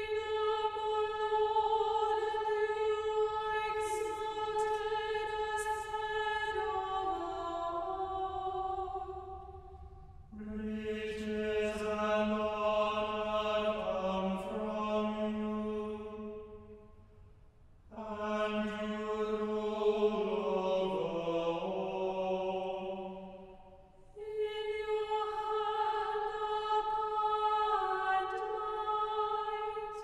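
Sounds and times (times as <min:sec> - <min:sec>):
choir singing in harmony: 0:00.0 - 0:09.7, 0:10.3 - 0:16.7, 0:17.9 - 0:30.0.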